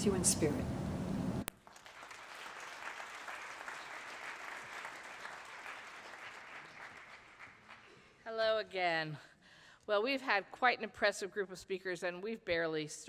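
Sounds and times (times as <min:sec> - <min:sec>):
audience applauding: 0:01.5 - 0:08.2.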